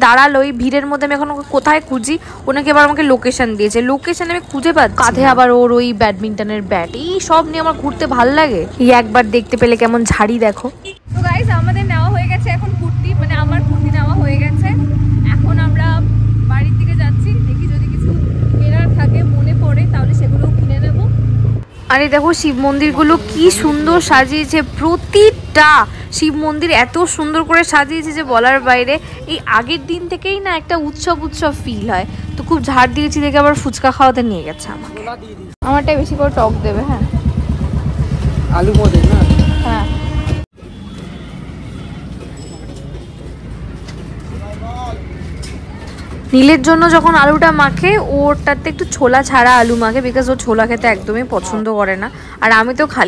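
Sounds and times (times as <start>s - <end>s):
people talking: 0.0s - 21.2s, 21.9s - 37.2s, 38.4s - 40.0s, 46.3s - 53.0s
road rumble: 0.0s - 53.0s
motorbike engine drone: 11.1s - 21.7s, 35.6s - 40.5s.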